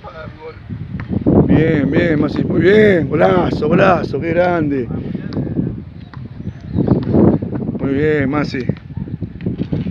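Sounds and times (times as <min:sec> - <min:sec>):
wind rumbling on microphone: 0:00.0 - 0:09.9.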